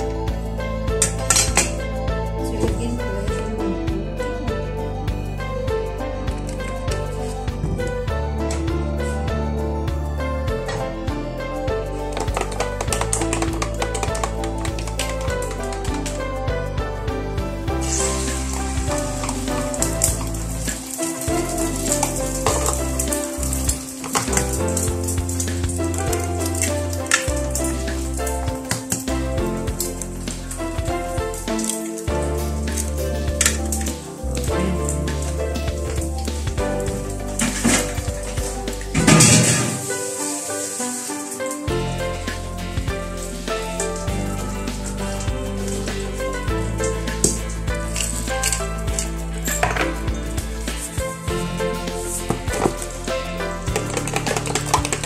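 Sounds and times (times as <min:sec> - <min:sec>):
background music with bass: 0:00.0 - 0:55.0
food sizzling in a pan: 0:17.8 - 0:27.1, 0:39.7 - 0:41.7.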